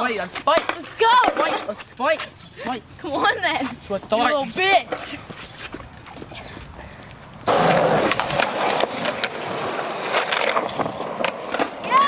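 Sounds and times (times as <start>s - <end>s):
skateboard clacks: 0.0s - 2.3s, 7.5s - 12.0s
skateboard wheels rolling on concrete: 0.0s - 12.0s.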